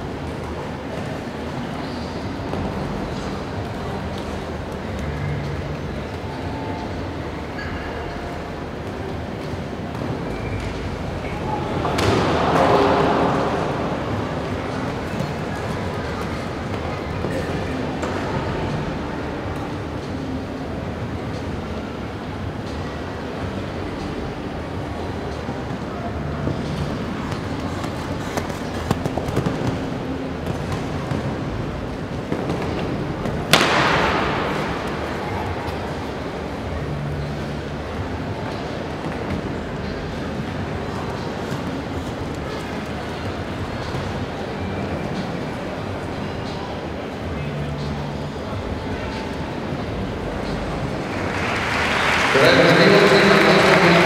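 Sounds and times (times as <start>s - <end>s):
indoor arena crowd rumble: 0.0s - 54.0s
burst of crowd noise: 11.6s - 15.3s, 33.5s - 35.9s, 51.1s - 54.0s.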